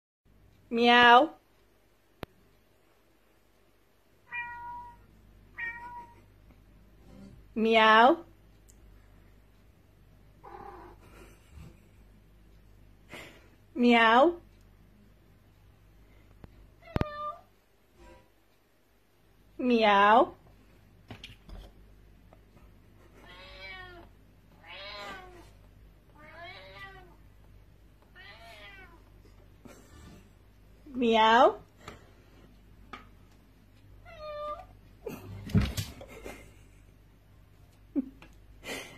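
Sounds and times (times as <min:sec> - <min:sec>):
recorded cat meow from speaker: 0:04.2 - 0:06.3, 0:16.8 - 0:17.5, 0:23.2 - 0:25.5, 0:26.2 - 0:27.2, 0:28.1 - 0:29.0
recorded cat meows from speaker: 0:04.3 - 0:06.2, 0:16.8 - 0:17.5.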